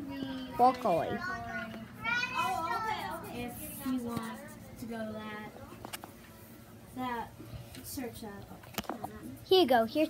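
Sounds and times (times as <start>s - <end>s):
child talking: 0.0s - 5.8s, 7.9s - 10.0s.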